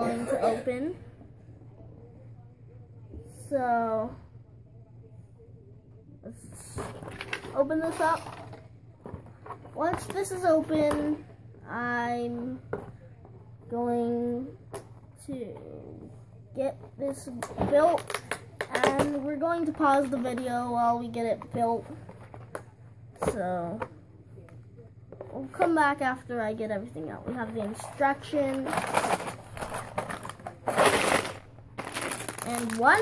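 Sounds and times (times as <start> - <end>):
plastic bag rustle: 27.5 - 33.0.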